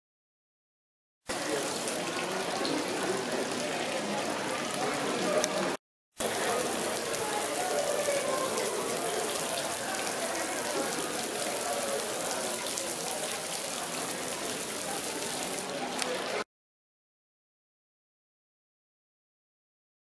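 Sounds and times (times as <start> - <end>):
fountain water splashing: 1.3 - 16.4.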